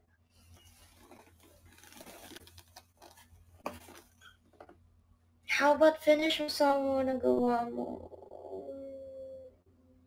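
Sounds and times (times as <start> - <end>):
faint rustling and scratching: 0.3 - 4.8.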